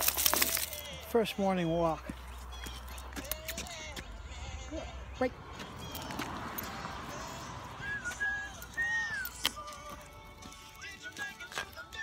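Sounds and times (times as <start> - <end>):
footsteps on concrete: 0.1 - 12.0.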